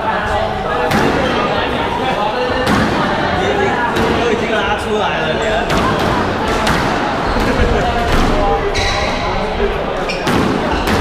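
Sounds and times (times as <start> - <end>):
murmur of voices: 0.0 - 11.0
squash ball knocks echoing: 0.8 - 1.5, 2.5 - 4.4, 5.6 - 8.8, 10.1 - 11.0.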